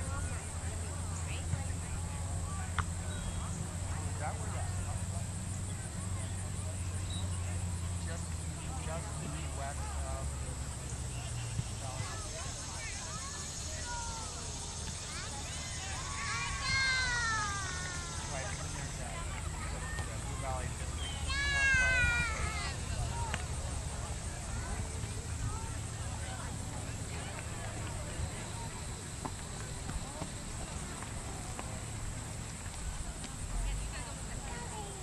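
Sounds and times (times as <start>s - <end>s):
distant voices: 0.0s - 35.0s.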